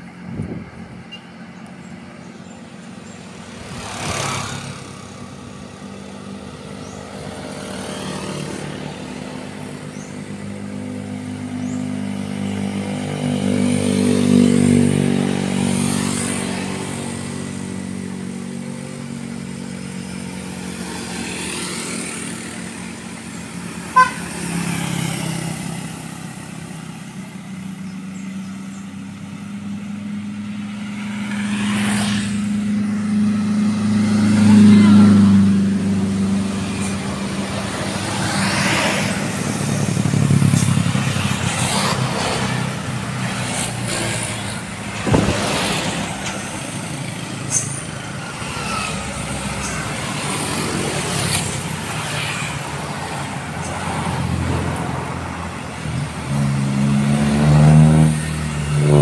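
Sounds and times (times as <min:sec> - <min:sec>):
scooters and cars driving past: 0:00.0 - 0:59.0.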